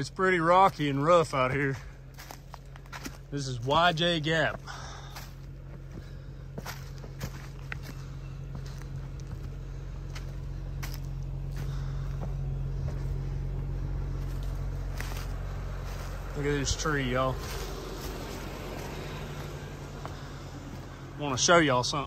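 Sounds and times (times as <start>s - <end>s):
car engine idling: 0.0s - 22.0s
footsteps crunching on dry leaves: 0.0s - 22.0s.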